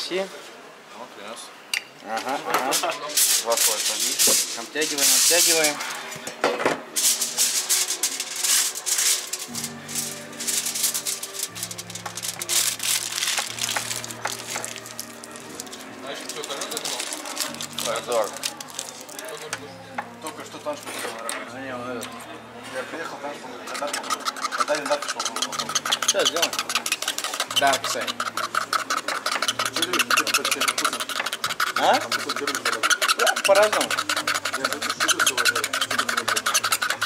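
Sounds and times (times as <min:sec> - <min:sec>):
aluminium foil crinkling: 0:02.7 - 0:05.8, 0:07.0 - 0:19.5, 0:24.1 - 0:37.0.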